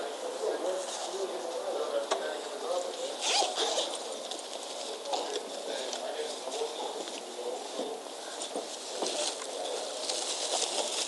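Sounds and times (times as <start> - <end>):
indistinct background voices: 0.0 - 11.0
rustling noise: 0.3 - 11.0.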